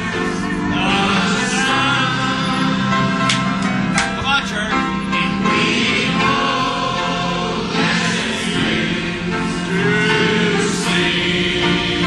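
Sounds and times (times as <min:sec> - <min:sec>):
choir singing gospel: 0:00.0 - 0:04.0, 0:05.1 - 0:12.0.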